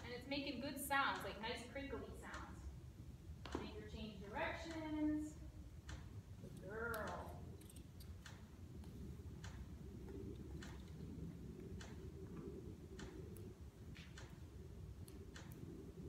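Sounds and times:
low steady rumble: 0:00.0 - 0:16.0.

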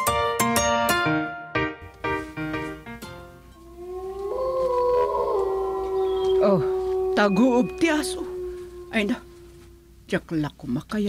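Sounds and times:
dog howling: 0:03.6 - 0:10.1.

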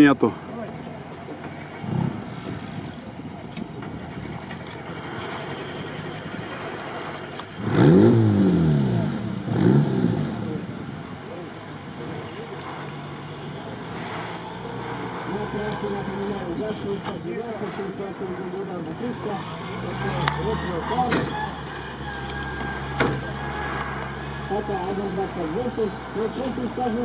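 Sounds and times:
off-road vehicle engine revving: 0:00.0 - 0:27.0.

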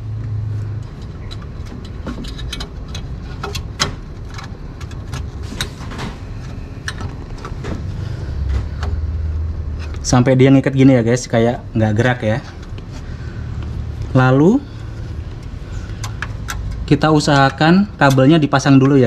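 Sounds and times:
low hum: 0:00.0 - 0:19.0.

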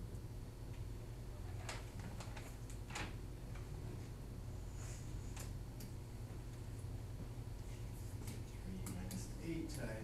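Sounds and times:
steady low hum: 0:00.0 - 0:10.0
light clicks and taps: 0:08.2 - 0:09.9.

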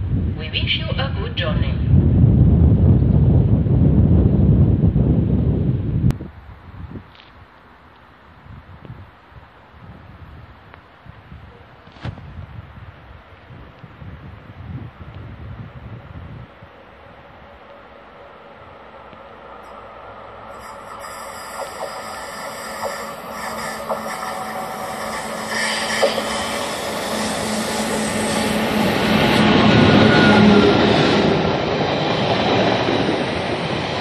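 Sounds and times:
wind buffeting microphone: 0:00.0 - 0:07.6, 0:08.2 - 0:17.7.

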